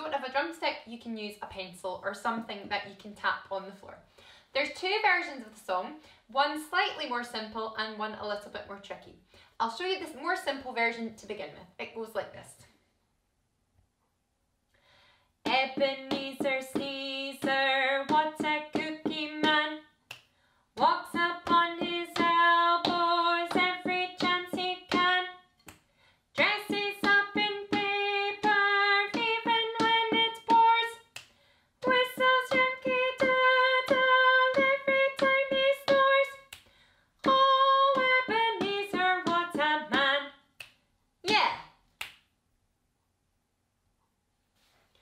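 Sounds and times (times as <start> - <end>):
woman singing children's song: 0.0 - 4.0, 4.6 - 12.7, 15.4 - 20.0, 20.8 - 25.5, 26.3 - 31.2, 31.8 - 36.6, 37.2 - 40.5, 41.2 - 41.6
drumstick tapping floor: 15.4 - 19.6, 20.8 - 25.2, 26.4 - 31.0, 31.8 - 36.4, 37.2 - 40.1.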